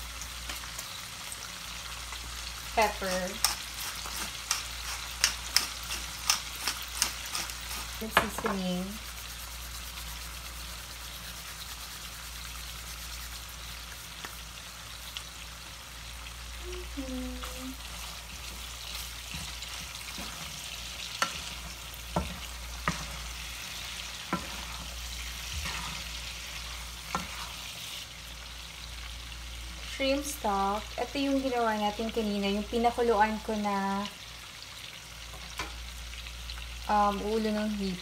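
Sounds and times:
shrimp sizzling in oil: 0.0 - 38.0.

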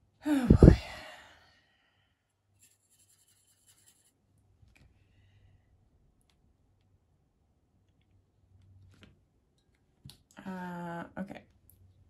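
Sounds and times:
brush scratching on paper: 2.6 - 4.2.

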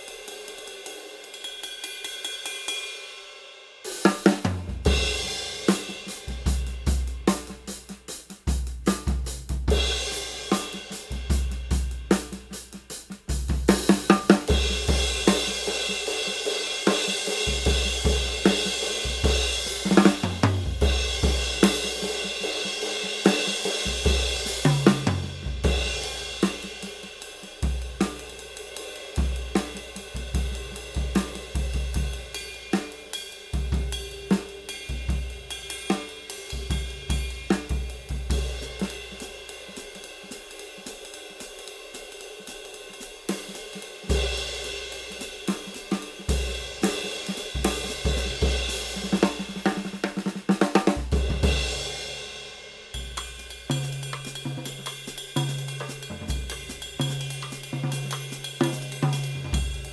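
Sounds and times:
snare drum: 3.9 - 52.3, 52.9 - 59.9
bass drum: 4.4 - 7.7, 8.4 - 10.2, 17.5 - 22.1, 23.8 - 26.7, 36.5 - 39.2, 46.3 - 50.2, 50.9 - 52.0, 53.0 - 59.9.

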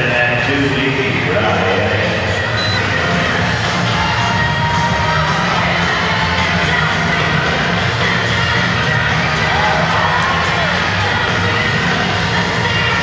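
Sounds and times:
loud music: 2.2 - 13.0
crowd cheering: 9.0 - 13.0.

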